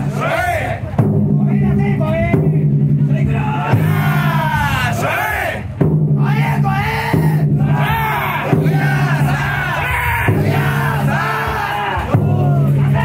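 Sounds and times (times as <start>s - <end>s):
crowd chanting: 0.0s - 1.0s, 3.1s - 13.0s
taiko drum beat: 0.0s - 13.0s.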